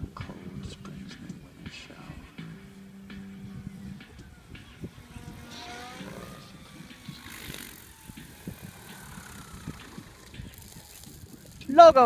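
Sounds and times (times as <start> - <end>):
rc helicopter rotor whine: 0.0 - 12.0.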